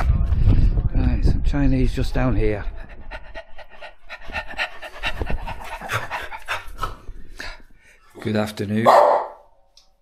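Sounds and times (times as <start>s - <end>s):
rapid panting breaths: 2.6s - 8.1s.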